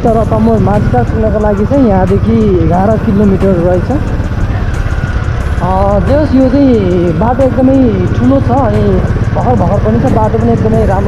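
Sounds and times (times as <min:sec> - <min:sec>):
person talking: 0:00.0 - 0:04.1, 0:05.6 - 0:11.0
motorcycle engine rumbling: 0:00.0 - 0:11.0.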